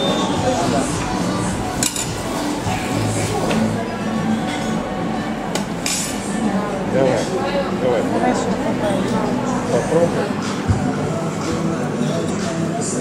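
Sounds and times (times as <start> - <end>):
background music: 0.0 - 13.0
metal utensils clinking on trays: 1.8 - 2.4.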